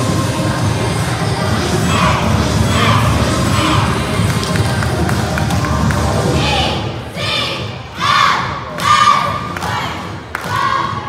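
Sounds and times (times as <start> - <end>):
cheerleaders shouting in unison: 1.7 - 4.4, 6.3 - 11.0.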